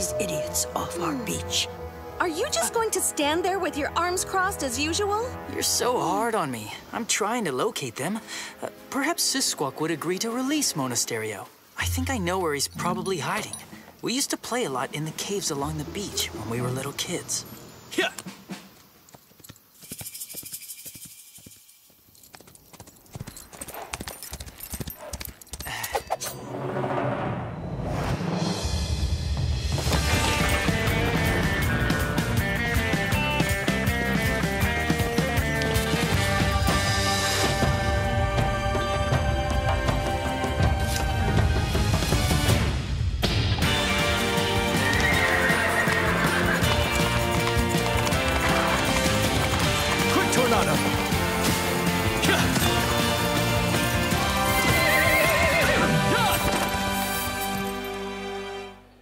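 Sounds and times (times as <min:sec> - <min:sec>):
music: 0:00.0 - 0:13.7, 0:27.5 - 0:59.0
horse hooves clip-clopping: 0:18.2 - 0:26.0, 0:32.6 - 0:42.5, 0:43.6 - 0:58.0
horse whinnying: 0:44.2 - 0:50.8, 0:54.0 - 0:56.7.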